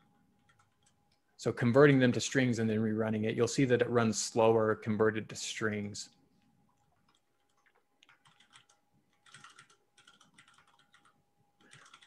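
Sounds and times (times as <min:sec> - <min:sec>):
faint keystrokes on a keyboard: 0:00.0 - 0:01.3, 0:06.4 - 0:12.0.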